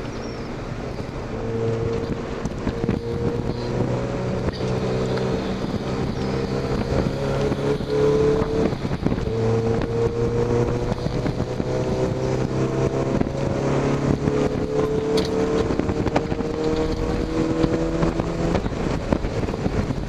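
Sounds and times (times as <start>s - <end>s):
car engine revving: 0.0s - 20.0s.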